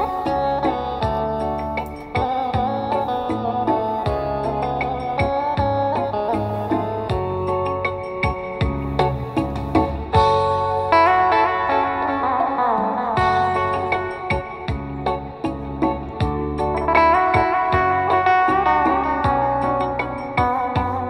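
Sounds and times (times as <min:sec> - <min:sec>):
guitar music with bass beat: 0:00.0 - 0:21.0.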